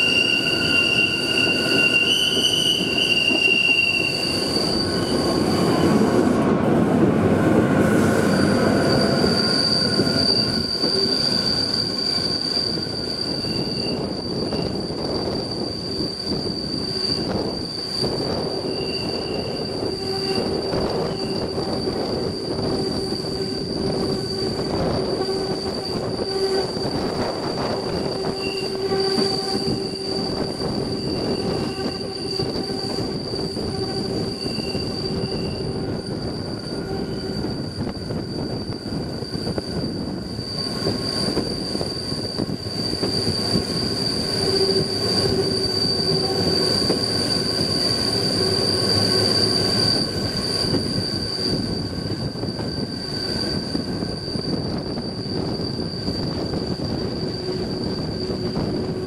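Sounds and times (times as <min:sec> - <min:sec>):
high-pitched wheel squeal: 0:00.0 - 0:06.4, 0:07.6 - 0:59.0
train wheels rumbling on rail: 0:00.0 - 0:59.0.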